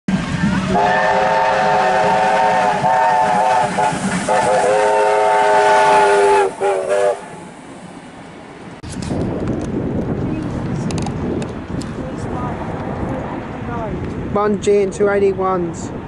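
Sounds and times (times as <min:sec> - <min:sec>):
passing train noise: 0:00.1 - 0:16.0
steam locomotive chime whistle: 0:00.4 - 0:07.4.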